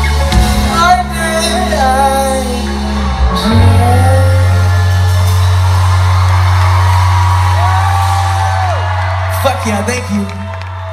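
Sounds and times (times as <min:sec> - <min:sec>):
deep bass note: 0:00.0 - 0:06.8.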